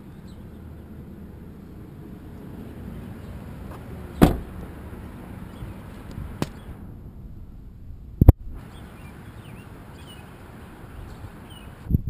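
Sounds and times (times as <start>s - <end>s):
car door slamming: 3.7s - 4.6s.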